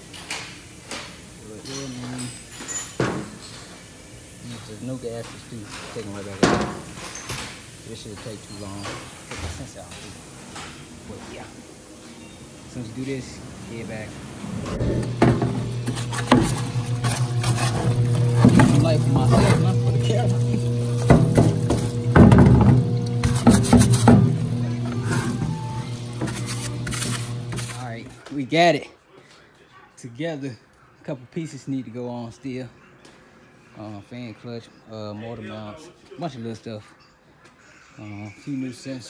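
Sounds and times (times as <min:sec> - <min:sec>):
liquid running over metal pan: 0:12.7 - 0:28.0
pump humming: 0:12.8 - 0:28.1
metal clunks: 0:14.8 - 0:19.8.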